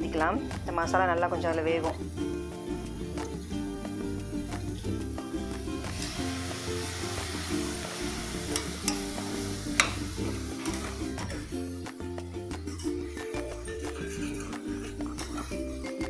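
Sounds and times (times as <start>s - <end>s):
background music with steady beat: 0.0s - 16.0s
food sizzling in a pot: 1.7s - 16.0s.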